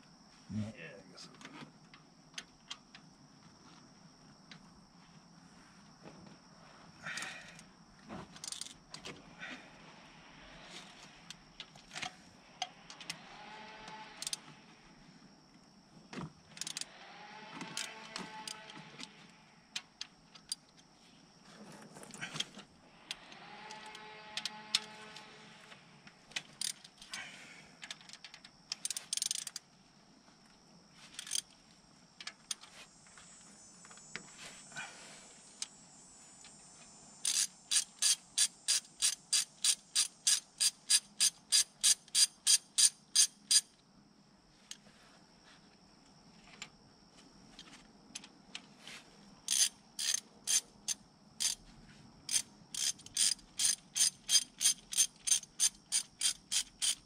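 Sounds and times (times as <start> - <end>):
socket ratchet clicking: 16.6 - 16.9, 26.6 - 26.9, 27.9 - 29.6, 31.2 - 31.5, 37.2 - 43.7, 49.5 - 51.6, 52.3 - 57.0.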